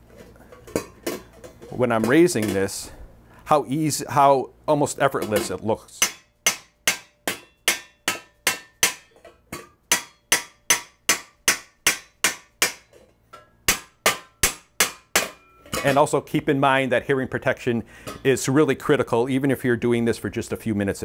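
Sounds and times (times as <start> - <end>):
hammer striking metal: 5.2 - 16.1.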